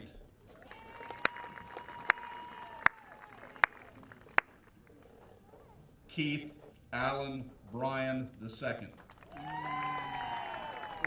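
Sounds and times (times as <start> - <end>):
audience cheering: 0.6 - 4.2, 9.2 - 11.0
loud handclaps close by: 0.9 - 4.6.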